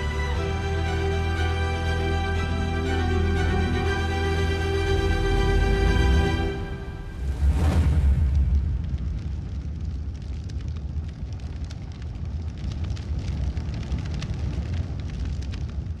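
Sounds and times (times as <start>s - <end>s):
low rumble: 0.0s - 16.0s
crackling embers: 7.2s - 16.0s.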